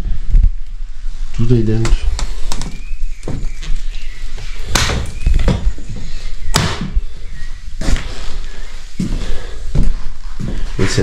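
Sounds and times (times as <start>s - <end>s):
footsteps on wooden floor: 2.2s - 7.1s, 7.8s - 11.0s
sharp thumps: 4.6s - 7.2s.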